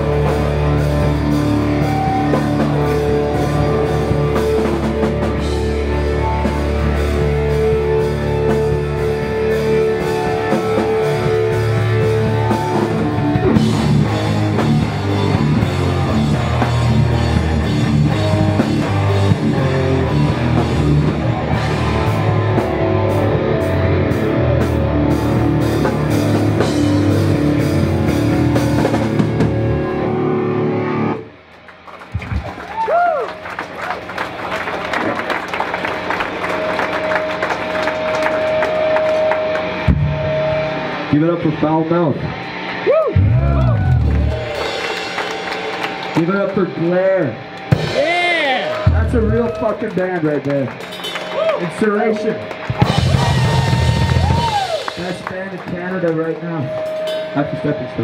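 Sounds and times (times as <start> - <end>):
hall noise: 0.0 - 58.0
punk band playing live: 0.0 - 58.0.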